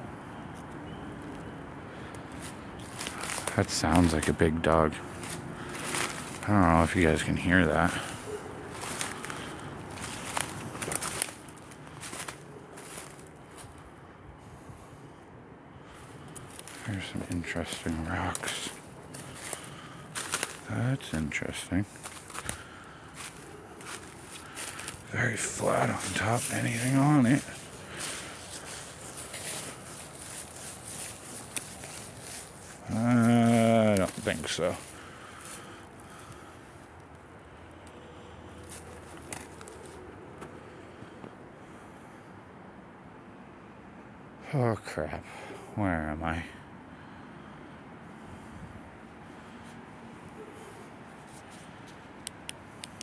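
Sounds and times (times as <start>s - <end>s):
footsteps on dry leaves: 1.9s - 13.8s, 15.8s - 36.5s, 38.5s - 40.1s.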